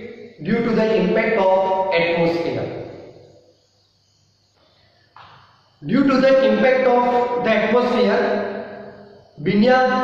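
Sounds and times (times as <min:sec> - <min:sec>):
man's voice: 0:00.0 - 0:02.8, 0:05.8 - 0:08.6, 0:09.4 - 0:10.0
faint room hiss: 0:00.0 - 0:10.0.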